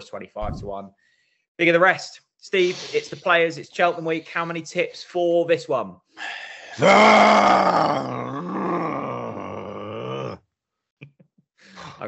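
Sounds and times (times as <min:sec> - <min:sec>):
man groaning: 0:06.7 - 0:10.4.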